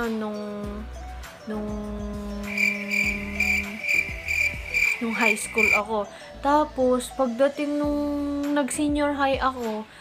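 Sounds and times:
soft background music: 0.0 - 10.0
high chirping call: 2.5 - 5.8.

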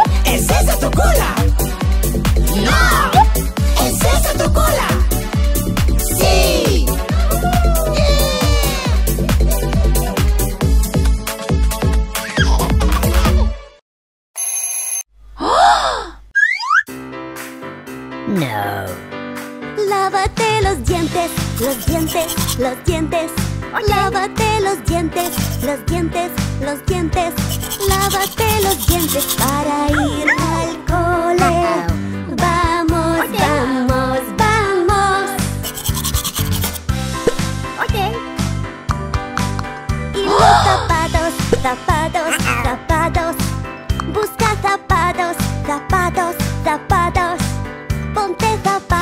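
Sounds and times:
children's music with steady beat: 0.0 - 11.8, 19.4 - 35.6, 40.9 - 49.0
toothbrush scrubbing teeth: 21.4 - 22.7, 25.1 - 25.8, 27.4 - 30.5, 35.6 - 37.4.

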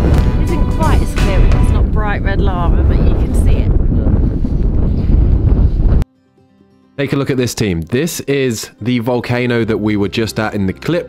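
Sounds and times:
strong wind buffeting microphone: 0.0 - 6.0.

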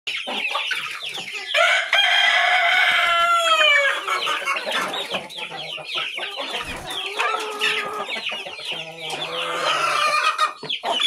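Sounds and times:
chickens clucking and squawking: 0.1 - 11.0
rooster crowing: 1.6 - 4.1.

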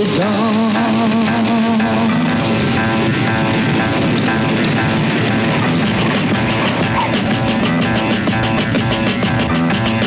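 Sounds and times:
music: 0.0 - 10.0
light aircraft propeller engine: 2.2 - 10.0.

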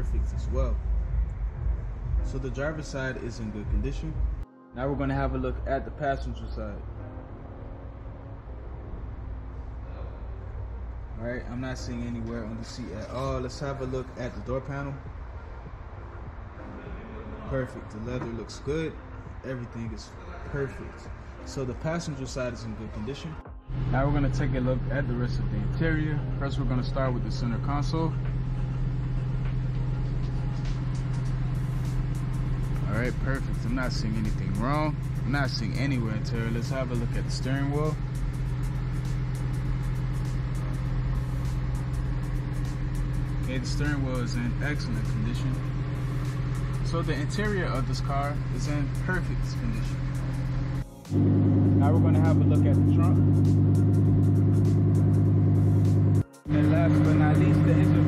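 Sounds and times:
car engine idling: 23.7 - 58.0.

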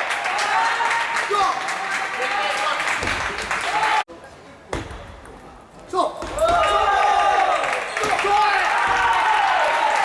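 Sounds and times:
voices shouting in a hall: 0.0 - 4.1, 5.9 - 10.0.

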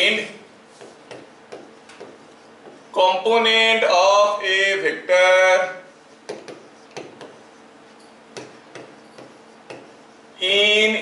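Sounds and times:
chalk tapping on blackboard: 0.7 - 3.0, 6.2 - 7.6, 8.3 - 10.2.

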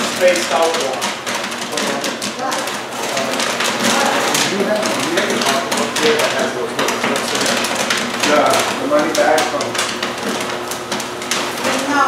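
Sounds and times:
popcorn popping: 0.0 - 12.0.

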